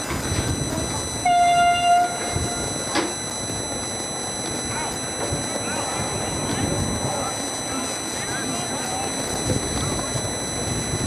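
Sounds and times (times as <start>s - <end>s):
horn steady note: 0.6s - 3.9s.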